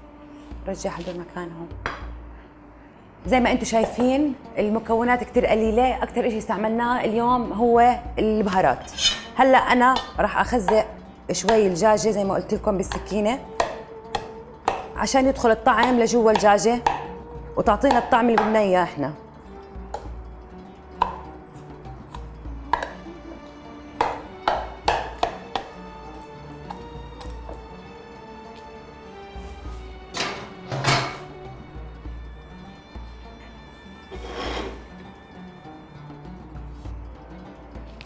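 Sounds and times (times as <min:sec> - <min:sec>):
soft background music: 0:00.0 - 0:38.0.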